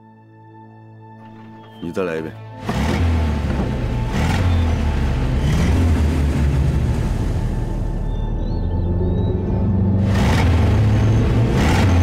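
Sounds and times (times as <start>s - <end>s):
jeep engine rumbling and revving: 2.5s - 12.0s.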